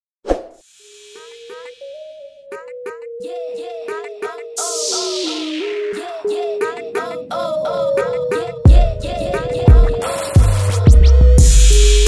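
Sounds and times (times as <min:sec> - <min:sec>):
sharp pop: 0:00.3 - 0:00.6.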